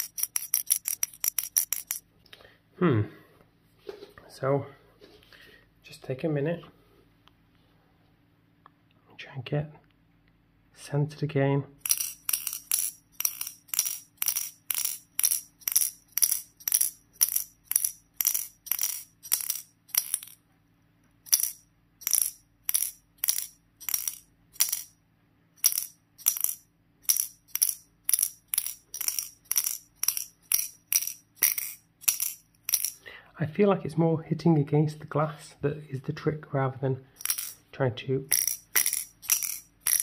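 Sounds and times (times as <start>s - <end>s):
metal ball clinking against glass: 0.0s - 2.0s, 11.8s - 20.4s, 21.3s - 25.0s, 25.6s - 33.0s, 37.2s - 37.7s, 38.3s - 40.0s.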